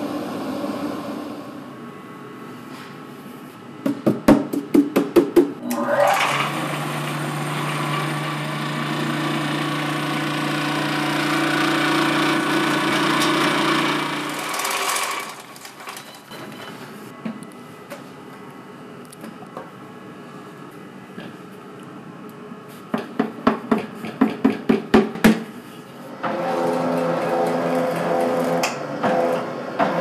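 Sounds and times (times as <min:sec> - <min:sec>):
sifter motor humming: 0:05.6 - 0:16.3.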